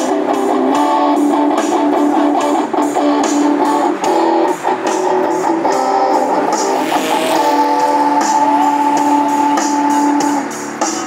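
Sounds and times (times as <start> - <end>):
backing drum beat: 0.0 - 11.0
electric guitar chords: 0.0 - 11.0.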